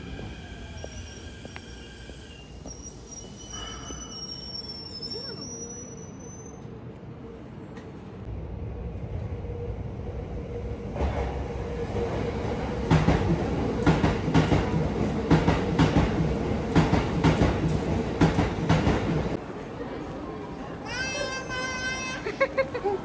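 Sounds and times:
train rumble: 0:06.6 - 0:23.0.

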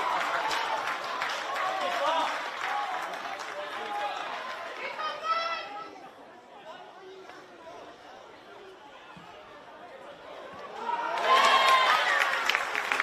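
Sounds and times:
indistinct chatter: 0:00.0 - 0:12.3.

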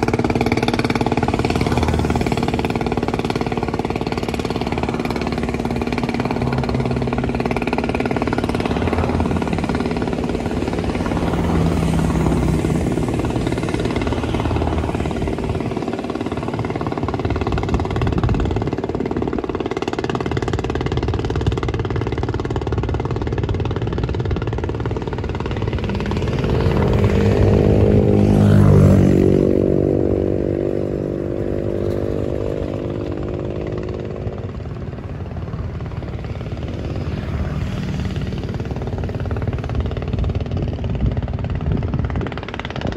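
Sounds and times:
vehicle passing close: 0:00.0 - 0:18.6, 0:23.8 - 0:40.3
vehicle engines running: 0:00.0 - 0:42.9.

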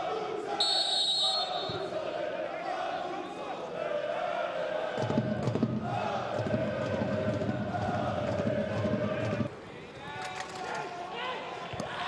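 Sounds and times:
background crowd voices: 0:00.0 - 0:12.0
referee's whistle blast: 0:00.6 - 0:01.9.

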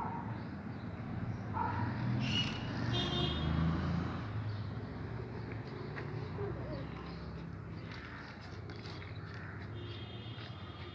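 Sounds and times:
distant road traffic: 0:00.0 - 0:10.9.

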